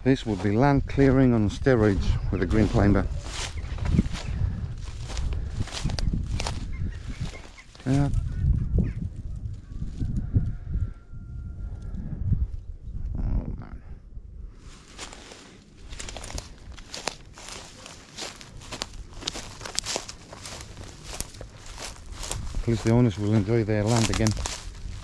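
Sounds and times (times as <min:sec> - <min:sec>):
low rumble: 0:00.0 - 0:07.3
footsteps crunching through dry grass: 0:00.0 - 0:10.6, 0:14.5 - 0:25.0.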